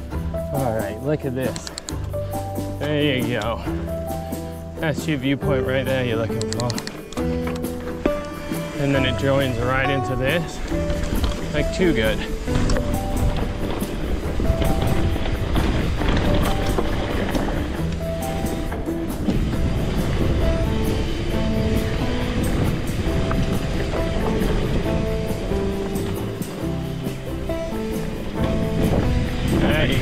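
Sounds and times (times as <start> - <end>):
background music melody: 0.0 - 30.0.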